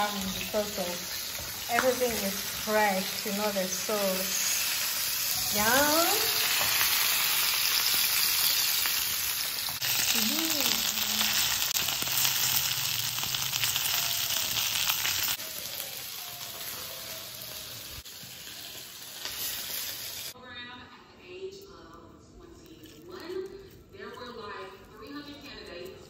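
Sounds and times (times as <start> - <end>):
fish sizzling in hot oil: 0.0 - 20.4.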